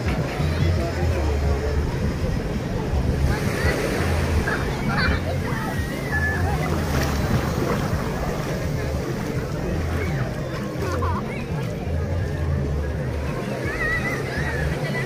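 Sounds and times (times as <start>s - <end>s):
music with low bass: 0.0s - 15.0s
people talking and calling out: 0.0s - 15.0s
small waves washing onto sand: 0.0s - 15.0s.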